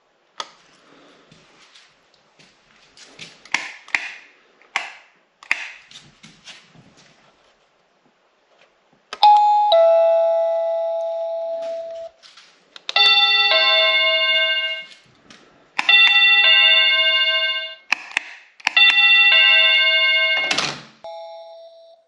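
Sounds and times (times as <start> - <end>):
two-note doorbell chime: 9.2 - 12.1, 13.0 - 14.9, 18.8 - 22.0.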